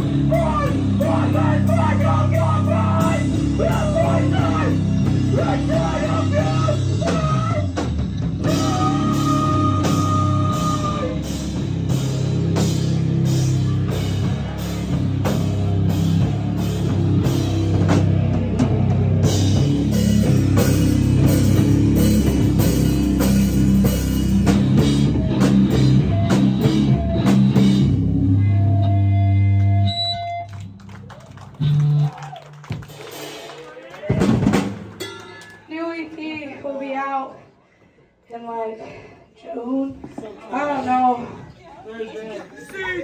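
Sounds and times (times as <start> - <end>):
live rock band playing: 0.0 - 35.7
noises from stage: 0.0 - 38.2.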